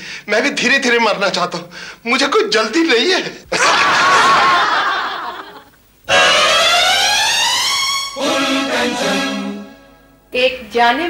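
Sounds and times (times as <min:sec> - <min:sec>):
canned laughter: 0:03.5 - 0:05.7
synthesized tone sweeping upward: 0:06.1 - 0:09.9.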